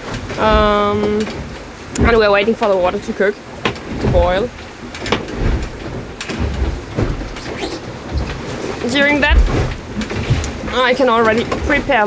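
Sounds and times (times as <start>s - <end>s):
microphone rubbing on jacket: 7.3s - 7.9s.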